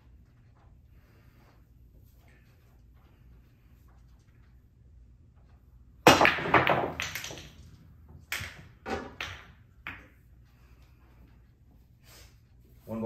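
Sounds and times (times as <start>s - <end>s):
pool balls clacking: 5.3s - 10.4s
cue ball cracking into balls: 6.0s - 10.2s.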